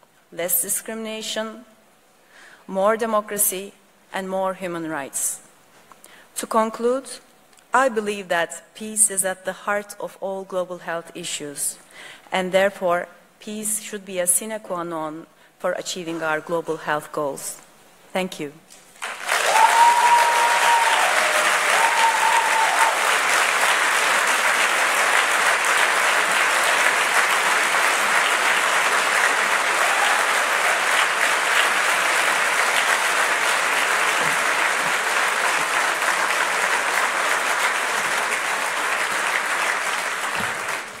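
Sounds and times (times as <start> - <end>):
large audience applauding: 19.0 - 41.0.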